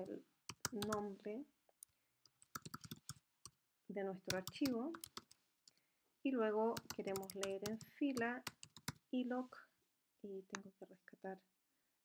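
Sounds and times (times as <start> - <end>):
keyboard key clicks: 4.3 - 5.3.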